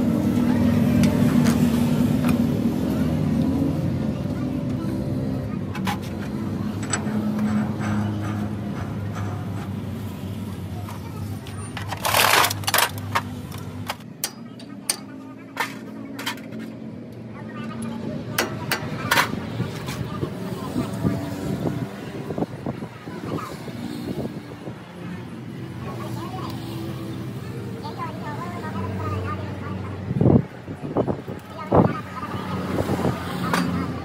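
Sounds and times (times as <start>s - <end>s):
indistinct voices: 0.0s - 34.0s.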